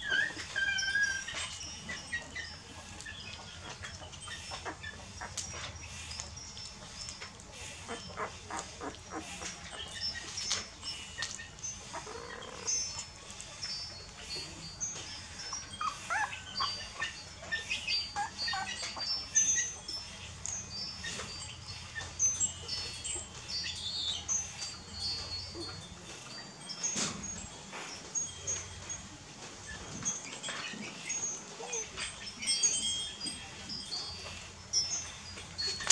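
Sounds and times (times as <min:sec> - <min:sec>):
puppy whimpers and squeaks: 0:00.0 - 0:35.9
puppies suckling wet clicks: 0:00.2 - 0:25.1.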